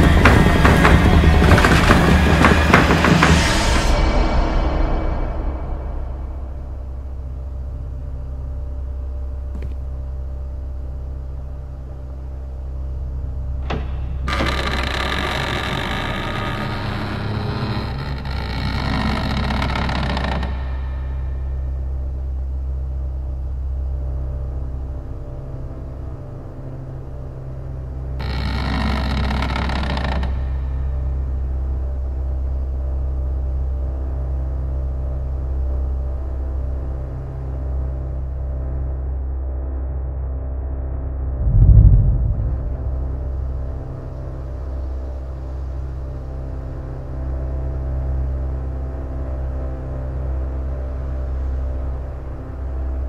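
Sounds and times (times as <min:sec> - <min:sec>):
low drone: 0:00.0 - 0:16.2, 0:40.7 - 0:53.0.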